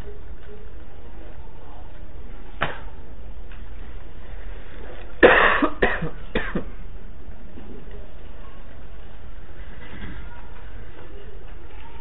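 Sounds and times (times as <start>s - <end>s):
person coughing: 5.2s - 6.8s.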